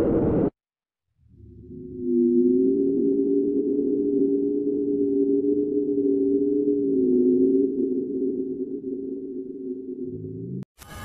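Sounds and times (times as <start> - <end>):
low electronic drone: 1.2 - 10.7.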